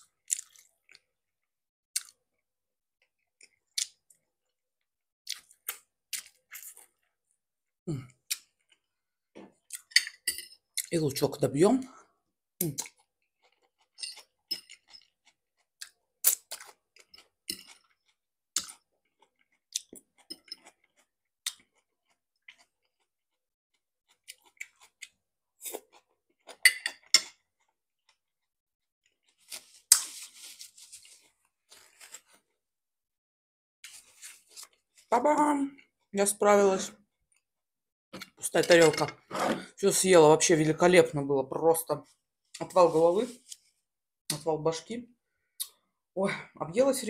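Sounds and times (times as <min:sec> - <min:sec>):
chewing and crunching salad: 0:00.0 - 0:04.6, 0:05.2 - 0:07.4, 0:08.0 - 0:09.0, 0:12.6 - 0:32.6, 0:33.8 - 0:35.2.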